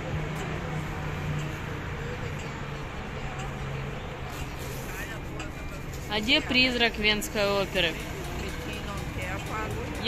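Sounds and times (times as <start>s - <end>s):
faint voices: 0.0s - 10.0s
street traffic rumble: 0.0s - 10.0s.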